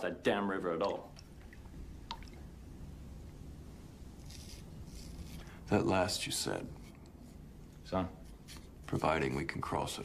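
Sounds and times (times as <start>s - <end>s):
low steady hum: 0.0s - 10.0s
razor scraping skin: 4.2s - 5.5s.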